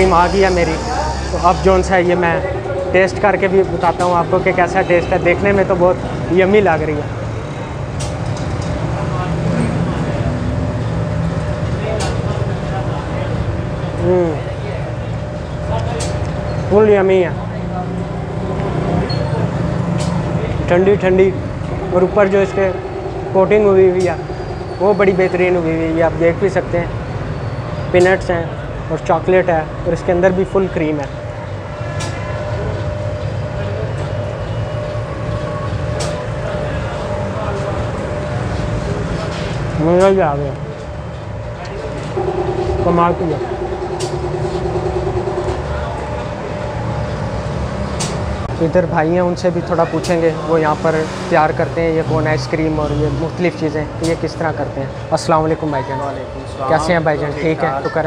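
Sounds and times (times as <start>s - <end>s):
low machine hum: 0.0s - 58.0s
faint steady whine: 19.6s - 49.6s.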